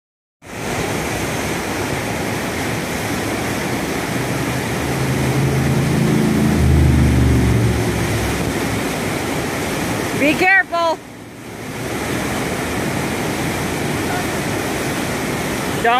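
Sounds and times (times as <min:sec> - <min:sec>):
roar of rushing water: 0:00.4 - 0:15.9
low hum: 0:03.4 - 0:09.6.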